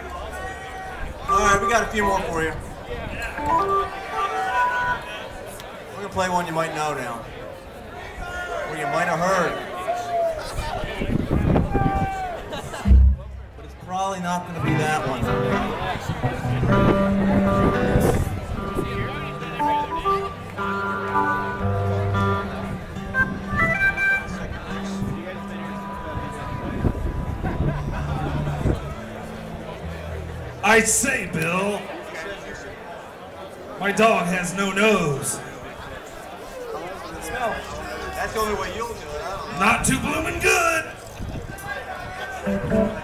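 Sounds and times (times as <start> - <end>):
crowd voices: 0.0 - 43.0
live band music: 1.3 - 2.5, 3.3 - 5.0, 12.8 - 13.9, 14.5 - 31.6, 42.4 - 43.0
amplified instrument single held notes: 3.3 - 5.1, 12.8 - 13.9, 14.5 - 31.6, 42.4 - 43.0.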